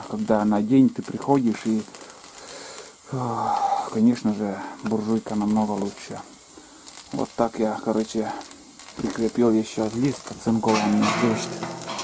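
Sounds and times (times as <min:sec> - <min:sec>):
low steady hiss: 0:00.0 - 0:12.0.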